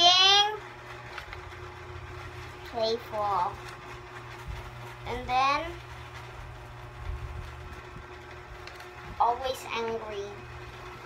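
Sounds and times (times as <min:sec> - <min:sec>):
low background hum: 0:00.0 - 0:11.0
person speaking: 0:02.6 - 0:06.4, 0:09.1 - 0:10.6.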